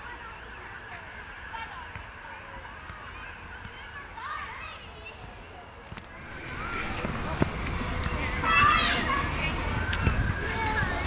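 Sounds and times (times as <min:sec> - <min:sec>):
children's voices: 0:00.0 - 0:11.0.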